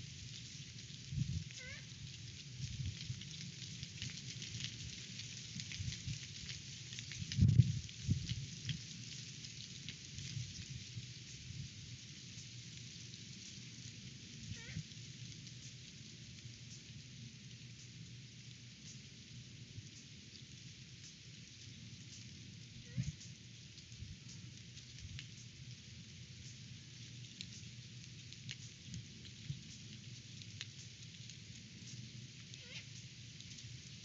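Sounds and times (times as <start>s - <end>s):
rustling leaves and branches: 0.0s - 34.0s
strong wind gusting on microphone: 1.0s - 1.8s, 7.2s - 8.8s, 22.9s - 23.2s
owl squawks: 1.6s - 1.9s, 14.5s - 14.8s, 22.9s - 23.2s, 32.6s - 32.9s.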